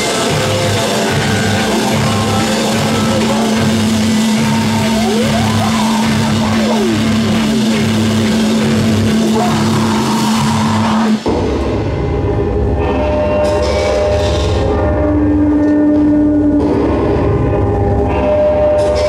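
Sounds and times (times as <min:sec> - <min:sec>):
electric guitar feedback: 0:00.0 - 0:19.0.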